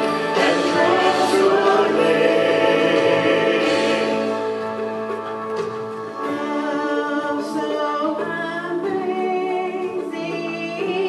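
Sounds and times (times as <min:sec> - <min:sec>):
man and woman singing duet: 0:00.1 - 0:04.6.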